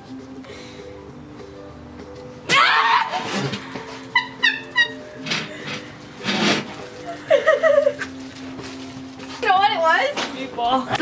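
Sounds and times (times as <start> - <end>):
young women laughing: 3.7 - 5.2, 7.0 - 8.2.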